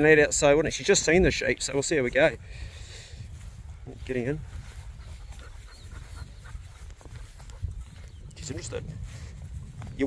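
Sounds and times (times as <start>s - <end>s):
dog panting: 4.6s - 8.2s.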